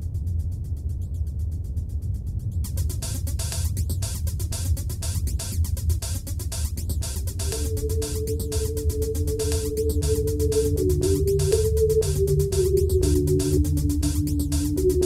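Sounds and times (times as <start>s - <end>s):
deep steady bass: 0.0s - 15.0s
fast ticking beat: 0.0s - 15.0s
held synth notes: 2.7s - 15.0s.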